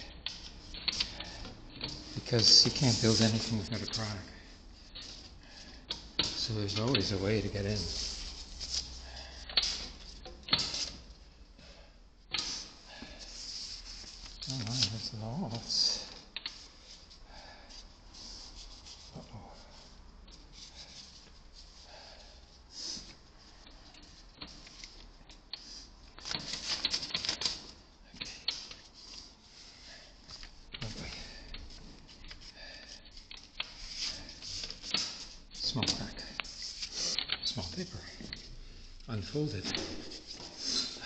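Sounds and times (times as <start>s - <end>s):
paper rustling: 13.3s - 15.1s, 26.2s - 29.4s.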